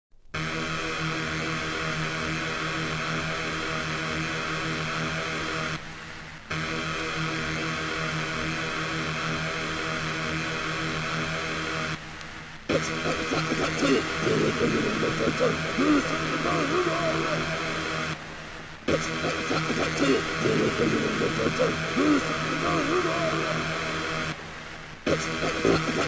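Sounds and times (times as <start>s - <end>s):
synthesizer drone: 12.7s - 26.0s.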